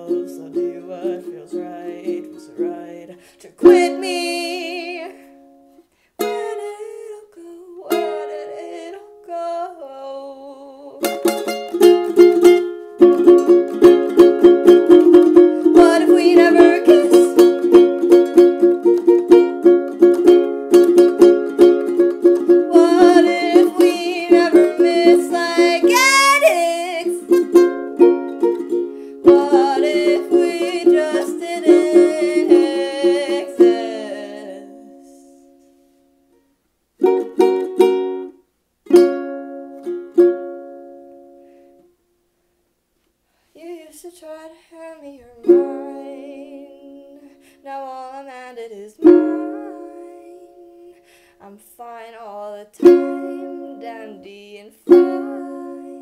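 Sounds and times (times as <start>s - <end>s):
ukulele picking and strumming: 0.0s - 41.9s, 45.3s - 51.0s, 52.1s - 56.0s.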